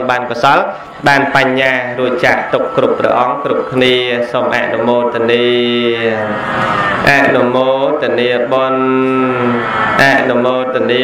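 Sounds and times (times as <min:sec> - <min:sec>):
man chanting in long notes: 0:00.0 - 0:11.0.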